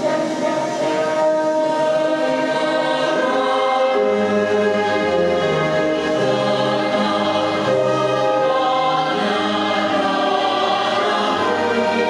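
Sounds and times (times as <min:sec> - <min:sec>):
choir singing over orchestra: 0:00.0 - 0:12.0.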